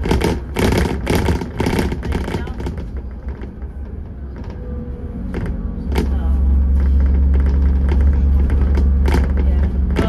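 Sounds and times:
bus engine and road rumble: 0.0s - 10.0s.

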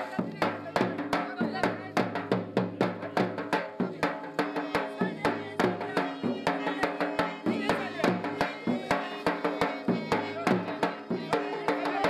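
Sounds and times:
quick steady drum beat: 0.0s - 12.0s.

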